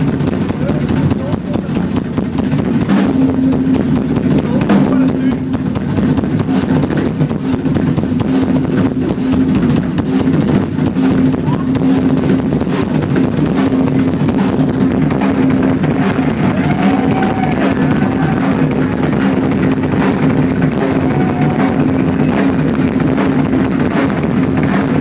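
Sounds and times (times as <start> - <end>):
low drone: 0.0 - 25.0
rock drum solo: 0.0 - 25.0.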